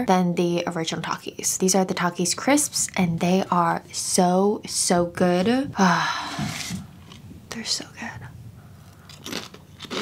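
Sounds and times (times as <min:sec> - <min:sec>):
crisp chip crunches: 0:09.1 - 0:10.0.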